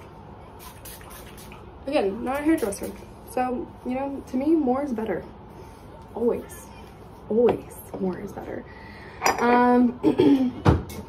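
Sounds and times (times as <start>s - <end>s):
spray bottle hissing: 0.6s - 1.6s.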